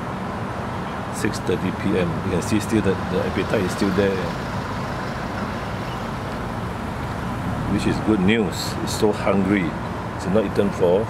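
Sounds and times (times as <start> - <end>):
low urban background rumble: 0.0 - 11.0.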